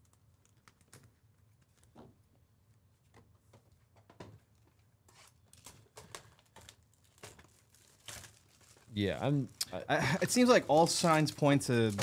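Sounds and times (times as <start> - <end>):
packaging crinkling: 5.3 - 9.8.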